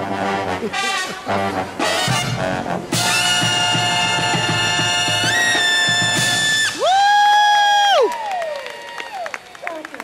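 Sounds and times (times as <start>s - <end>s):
brass band playing: 0.0s - 6.8s
people cheering and whooping: 5.3s - 10.0s.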